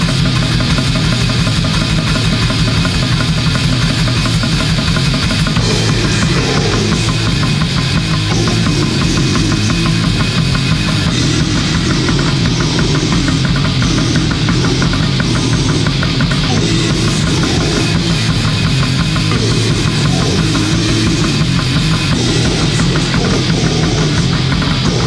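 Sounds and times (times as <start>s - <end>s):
black metal music: 0.0s - 25.0s.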